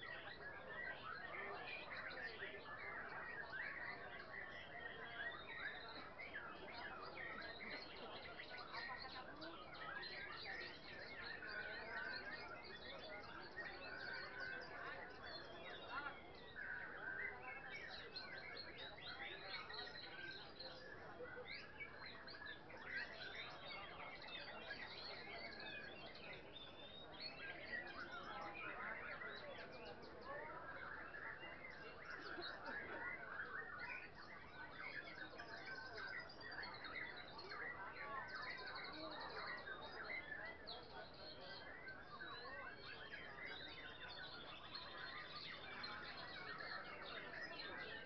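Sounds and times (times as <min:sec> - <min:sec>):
caged songbirds singing: 0:00.0 - 0:48.0
faint crowd murmur: 0:00.0 - 0:48.0.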